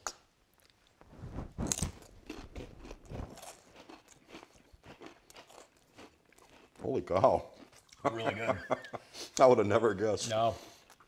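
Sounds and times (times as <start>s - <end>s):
crispbread being chewed: 0.4s - 8.2s, 10.6s - 11.0s.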